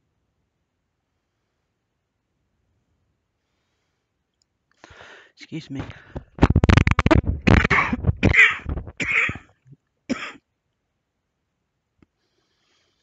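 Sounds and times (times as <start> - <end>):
person clearing throat: 5.8 - 9.4, 10.1 - 10.4
person coughing: 7.0 - 9.4, 10.1 - 10.4.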